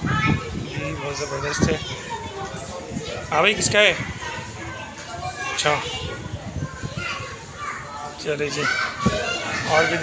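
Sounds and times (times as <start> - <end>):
children shouting and playing: 0.0 - 10.0.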